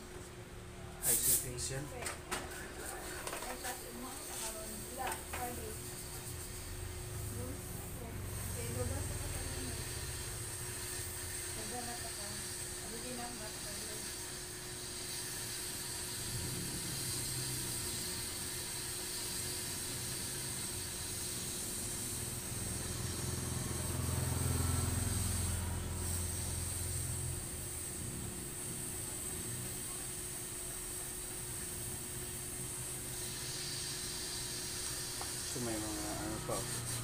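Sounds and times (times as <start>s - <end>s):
steady hiss: 1.0s - 1.7s.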